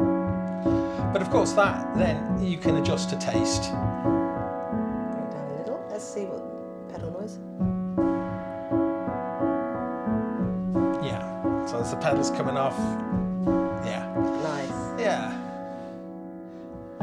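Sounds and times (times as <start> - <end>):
piano chords: 0.0 - 17.0.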